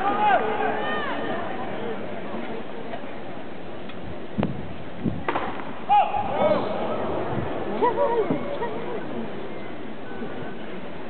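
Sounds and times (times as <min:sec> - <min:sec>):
spectators talking: 0:00.0 - 0:11.0
stadium crowd murmur: 0:00.0 - 0:11.0.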